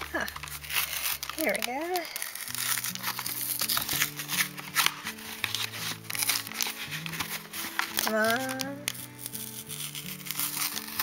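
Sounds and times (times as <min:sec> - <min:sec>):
plastic packaging crinkling: 0:00.0 - 0:11.0
slow low background music: 0:00.0 - 0:11.0.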